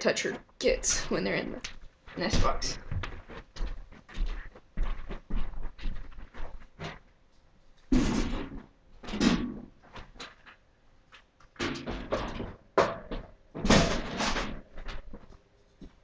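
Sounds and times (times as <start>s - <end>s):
loud clattering bangs: 7.9s - 9.7s, 11.6s - 15.1s
knocks clicks and thuds: 11.6s - 16.0s.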